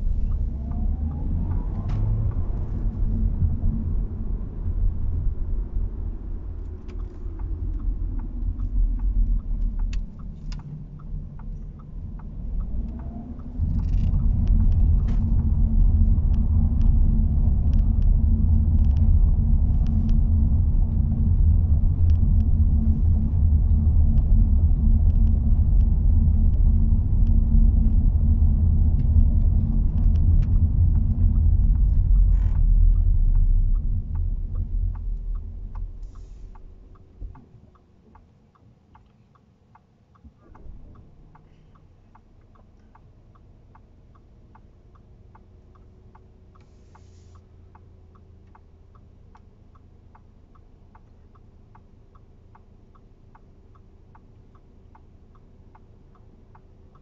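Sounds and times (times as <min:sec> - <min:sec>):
car cabin road rumble: 0:00.0 - 0:57.0.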